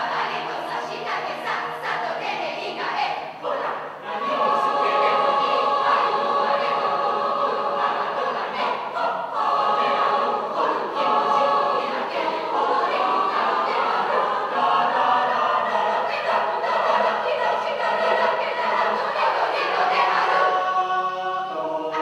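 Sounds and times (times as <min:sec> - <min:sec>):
mixed choir singing: 0:00.0 - 0:22.0.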